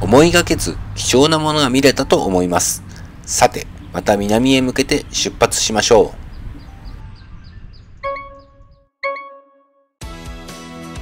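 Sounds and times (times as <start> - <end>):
small bird chirping: 5.0 - 9.4
bell-like chime effect: 8.0 - 9.8.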